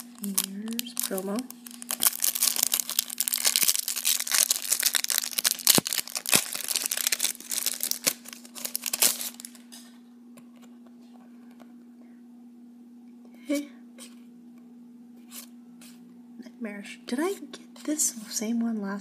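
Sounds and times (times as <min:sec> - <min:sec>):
plastic wrapper crinkling: 0:00.0 - 0:09.8.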